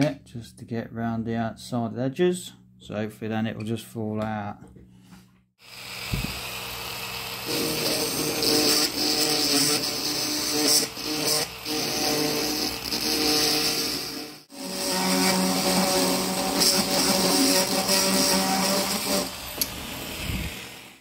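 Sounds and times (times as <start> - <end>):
rotary tool cutting: 5.7 - 21.0.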